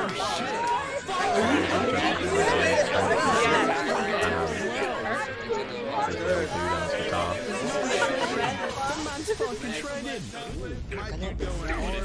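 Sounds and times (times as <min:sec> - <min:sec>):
people laughing: 0:00.0 - 0:12.0
people talking: 0:00.0 - 0:12.0.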